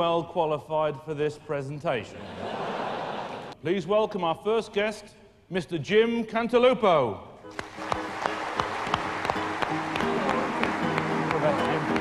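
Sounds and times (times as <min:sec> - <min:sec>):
walk-on music: 0:07.4 - 0:12.0
audience applauding: 0:07.5 - 0:12.0.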